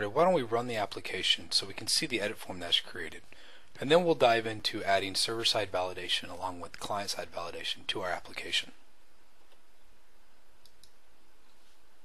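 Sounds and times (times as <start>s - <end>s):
steady hiss: 0.0s - 12.0s
faint computer clicks: 10.6s - 11.6s.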